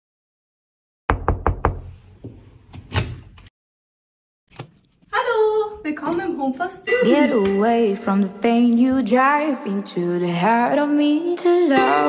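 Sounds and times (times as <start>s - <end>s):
knocking on door: 1.1s - 2.4s.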